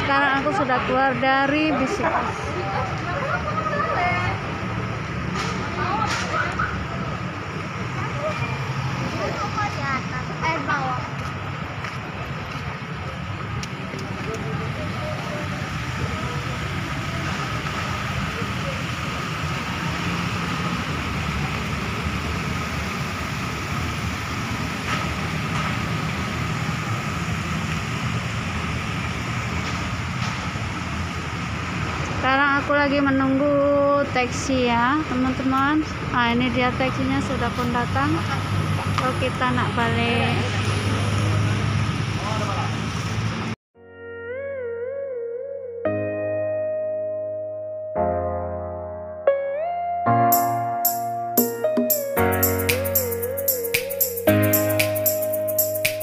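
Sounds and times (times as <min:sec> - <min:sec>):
car engines humming: 0:00.0 - 0:43.6, 0:50.4 - 0:56.0.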